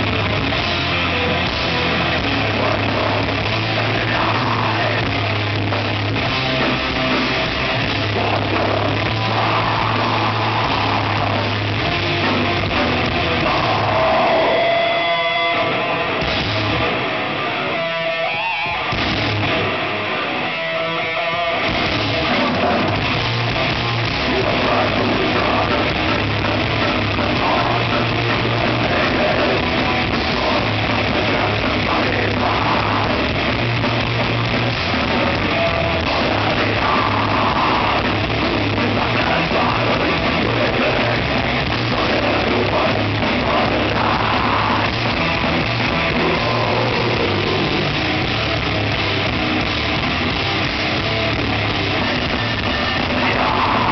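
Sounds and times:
death metal band playing live: 0.0s - 53.9s.

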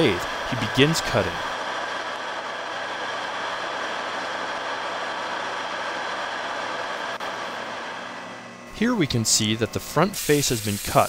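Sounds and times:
metal lathe whirring: 0.0s - 11.0s.

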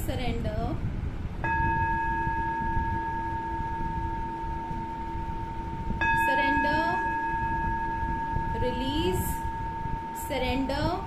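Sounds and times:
singing bowl ringing: 1.4s - 11.0s.

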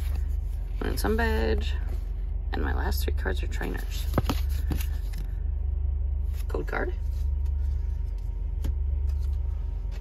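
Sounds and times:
cards shuffling: 3.7s - 5.4s, 6.3s - 10.0s.

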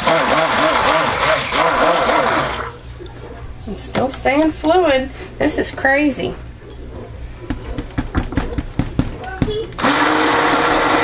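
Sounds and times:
stick blender whirring: 0.0s - 2.8s, 9.2s - 11.0s.

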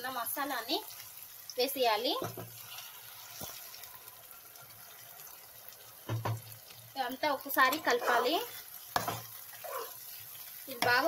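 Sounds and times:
onions frying in oil: 0.0s - 11.0s.

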